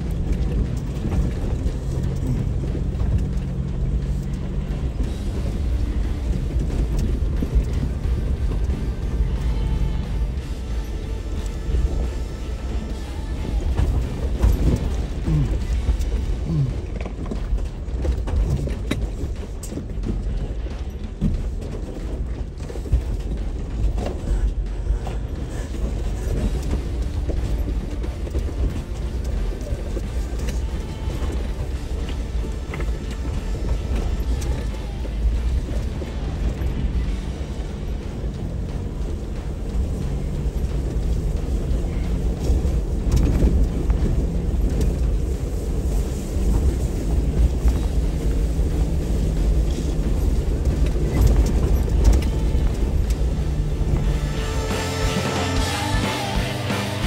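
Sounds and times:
music playing: 0:00.0 - 0:57.0
vehicle engine rumble: 0:00.0 - 0:57.0.

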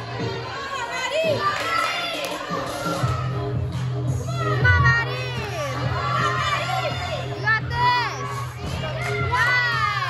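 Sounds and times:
music over speakers: 0:00.0 - 0:10.0
girls chattering: 0:04.4 - 0:10.0.

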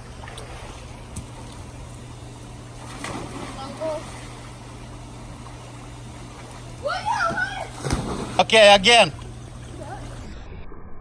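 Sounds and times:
faint water sounds: 0:00.0 - 0:10.5
steady low hum: 0:00.0 - 0:11.0.

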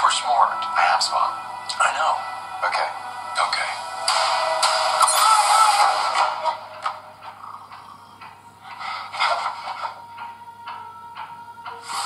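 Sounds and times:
trailer music: 0:00.0 - 0:12.0
sound effects: 0:04.0 - 0:07.0.

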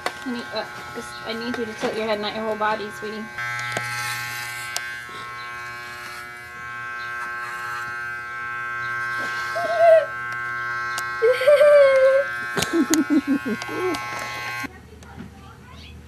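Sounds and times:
electric hair clippers buzzing: 0:00.0 - 0:14.7
short wavering voice: 0:09.5 - 0:10.2.

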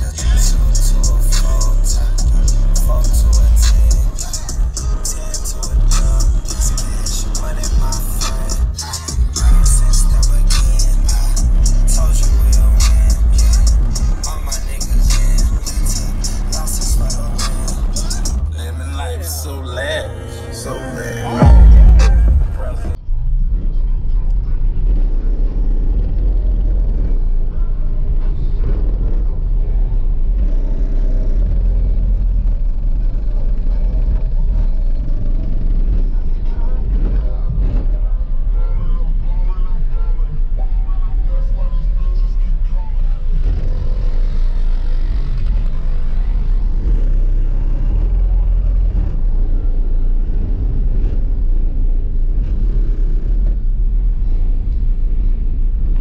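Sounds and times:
subwoofer playing bass-heavy music: 0:00.0 - 0:56.0.

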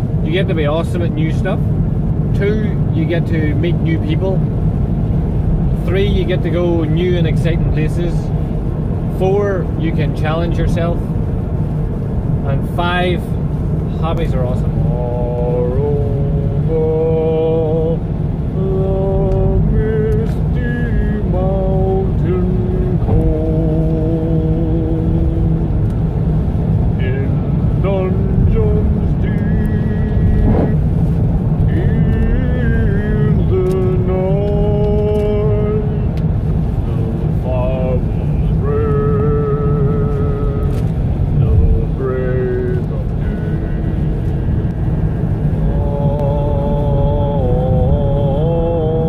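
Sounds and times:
car engine and road rumble: 0:00.0 - 0:49.0
person singing long notes: 0:37.4 - 0:40.8, 0:45.5 - 0:49.0.

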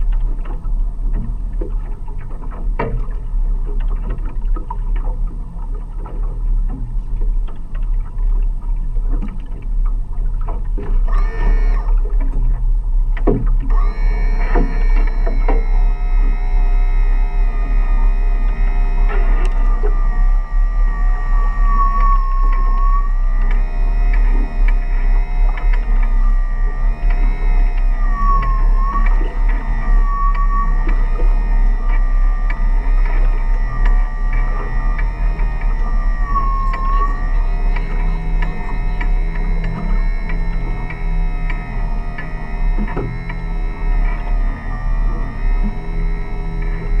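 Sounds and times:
low steady rumble: 0:00.0 - 0:47.0
pot puller motor whining: 0:13.7 - 0:47.0.

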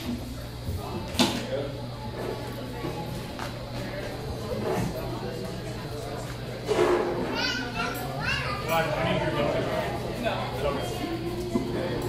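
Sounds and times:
young people chattering: 0:00.0 - 0:12.0.

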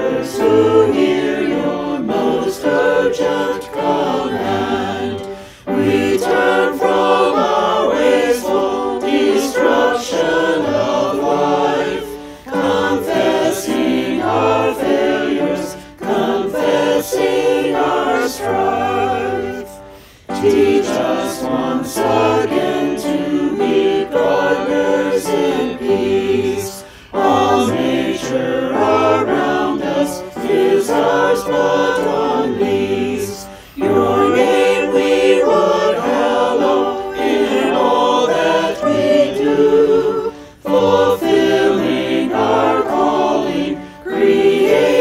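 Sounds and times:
choir singing a hymn: 0:00.0 - 0:45.0.

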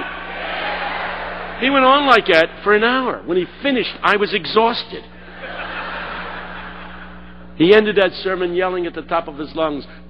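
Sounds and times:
audience laughing: 0:00.0 - 0:01.6, 0:05.2 - 0:07.6.

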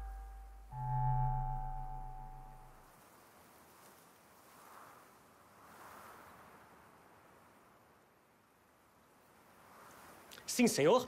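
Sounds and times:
held orchestral chord: 0:00.0 - 0:02.8.

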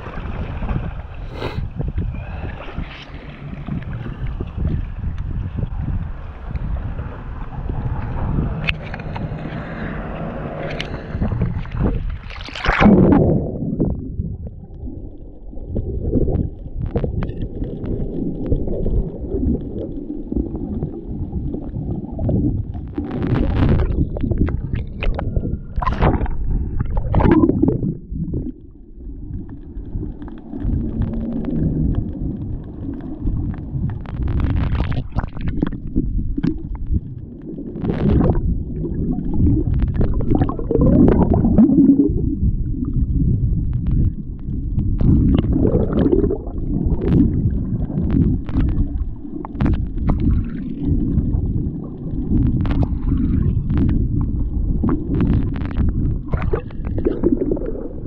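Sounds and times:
gurgling bubbles and splashing: 0:00.0 - 0:58.0
muffled underwater rumble: 0:00.0 - 0:58.0.

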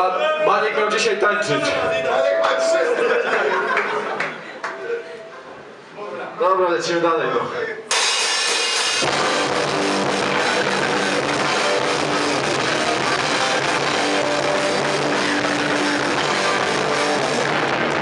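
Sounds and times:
hardcore punk band playing: 0:07.9 - 0:18.0.

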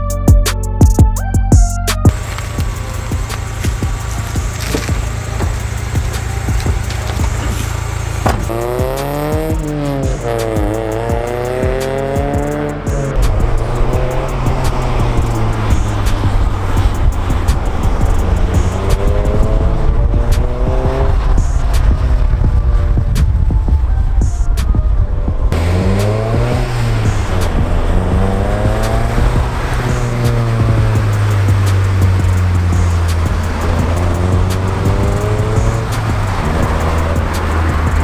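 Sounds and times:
car engine accelerating: 0:00.0 - 0:38.0
music with steady beat: 0:00.0 - 0:38.0.

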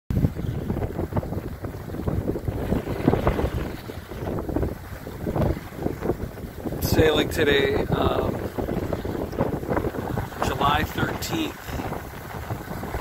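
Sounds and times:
water rushing past hull: 0:00.1 - 0:13.0
wind gusting across microphone: 0:00.1 - 0:13.0.

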